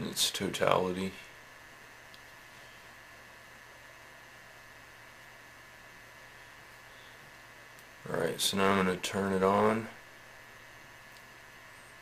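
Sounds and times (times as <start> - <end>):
faint steady hiss: 0.0 - 12.0
low mains hum: 0.0 - 12.0.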